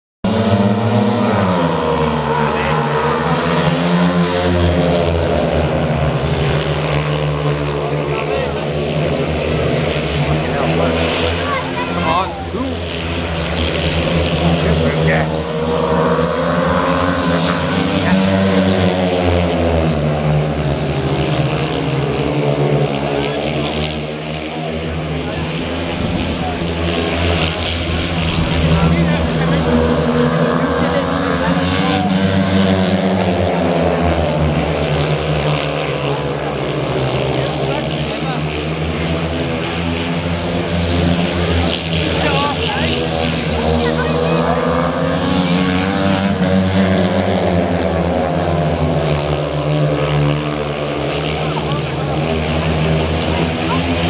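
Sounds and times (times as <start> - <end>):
motorcycles racing: 0.2 - 54.0.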